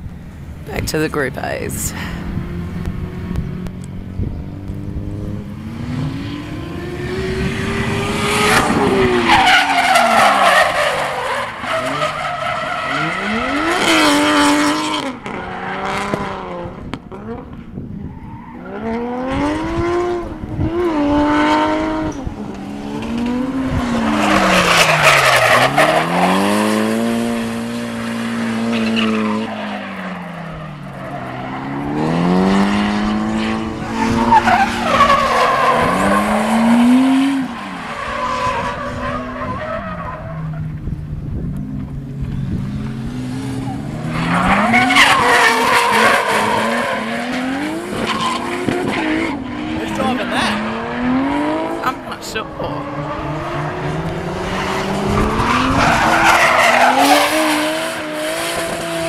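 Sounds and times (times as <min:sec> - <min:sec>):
car engines revving: 0:00.0 - 0:59.0.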